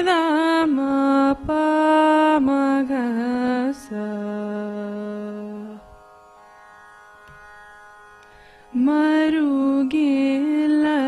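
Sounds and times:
girl singing classical vocal: 0:00.0 - 0:06.0, 0:08.7 - 0:11.0.

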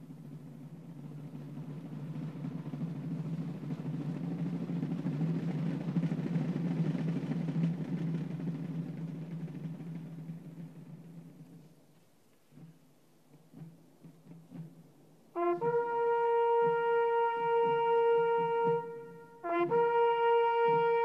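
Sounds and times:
field drums rolling: 0:00.0 - 0:21.0.

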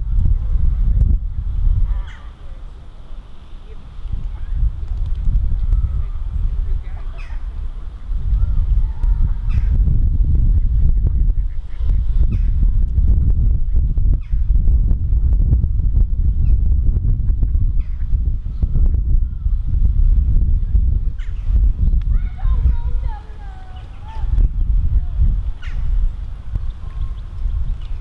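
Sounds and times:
wind rumbling on microphone: 0:00.0 - 0:28.0.

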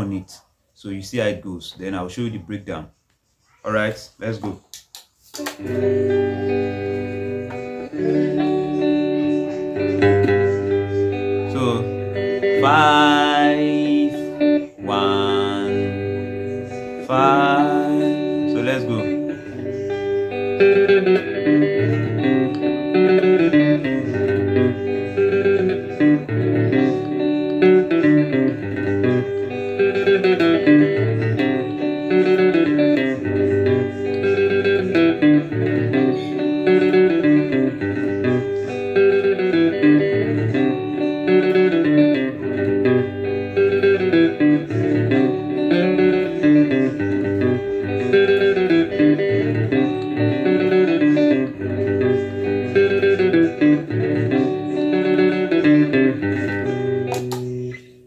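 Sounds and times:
guitar riff: 0:05.4 - 0:58.0
backing loop: 0:05.6 - 0:57.8.

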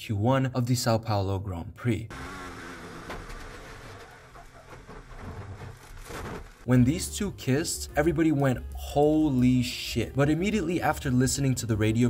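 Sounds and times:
racing car engine: 0:02.1 - 0:06.6
wind and tyre noise: 0:02.2 - 0:06.7.

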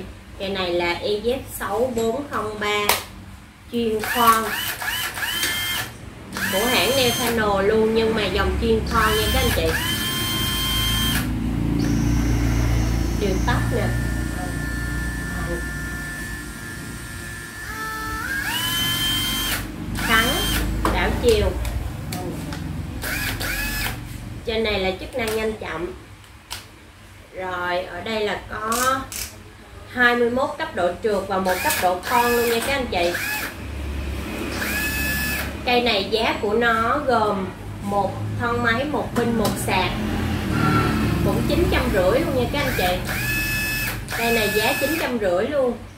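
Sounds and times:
cordless drill motor: 0:04.0 - 0:07.5, 0:08.9 - 0:20.9, 0:23.0 - 0:24.0, 0:31.5 - 0:33.6, 0:34.4 - 0:35.6, 0:42.6 - 0:45.1.

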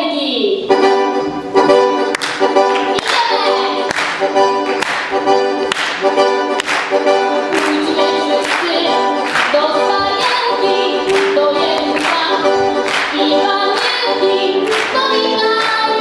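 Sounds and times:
piano accordion: 0:00.6 - 0:16.0
woman singing a carol: 0:07.6 - 0:12.6.

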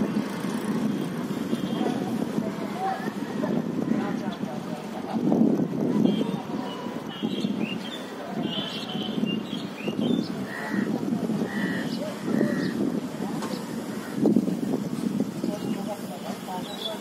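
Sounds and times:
distant voices of people: 0:00.2 - 0:17.0
birds chirping: 0:06.0 - 0:12.9, 0:15.4 - 0:17.0.

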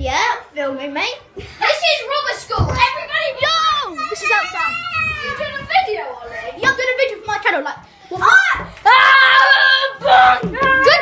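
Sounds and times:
children shouting: 0:02.0 - 0:06.8, 0:08.1 - 0:11.0.

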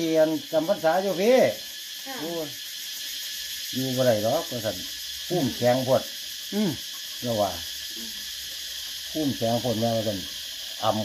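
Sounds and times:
steady high hiss: 0:00.0 - 0:11.0
man speaking: 0:03.8 - 0:06.0.

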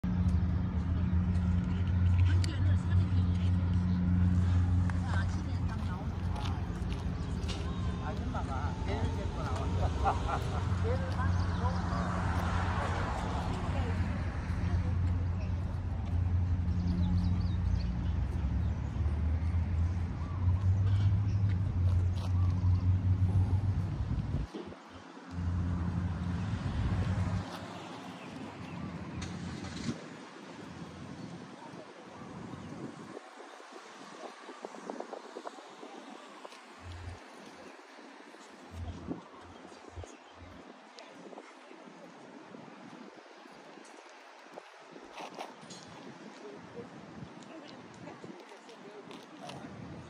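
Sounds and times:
steady low rumble: 0:00.0 - 0:24.5
low engine hum: 0:00.0 - 0:31.6
voices talking: 0:00.8 - 0:50.0.

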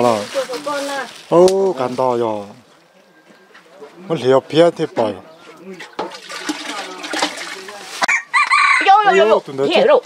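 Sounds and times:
water splashing in metal basin: 0:05.9 - 0:08.1
rooster crowing: 0:08.1 - 0:09.4.

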